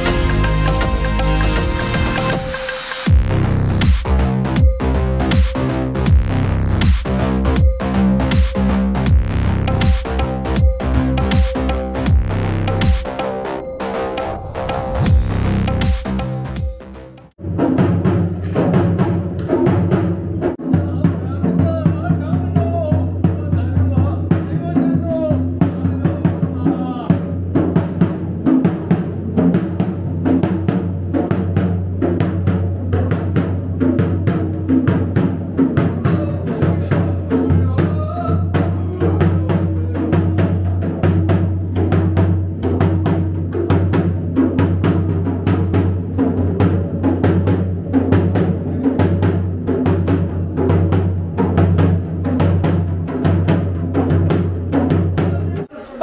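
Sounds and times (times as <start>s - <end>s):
barrel drum beaten fast: 3.0s - 13.3s, 15.0s - 55.7s.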